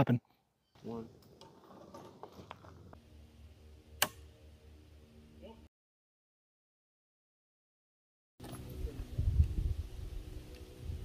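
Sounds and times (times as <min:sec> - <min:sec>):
sharp shotgun click: 0:04.0 - 0:04.2.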